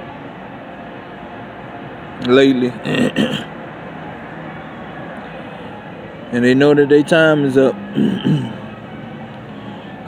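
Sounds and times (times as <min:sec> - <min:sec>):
steady rumble and hiss: 0:00.0 - 0:10.0.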